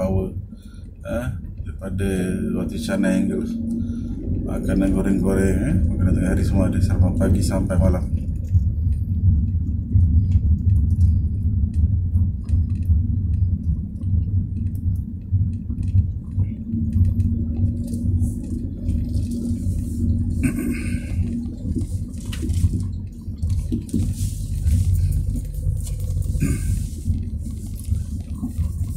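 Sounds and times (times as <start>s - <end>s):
car engine rumble: 0.0s - 28.9s
road noise: 0.0s - 28.9s
steady hum: 0.0s - 28.9s
light clicks and rattles: 6.2s - 28.9s.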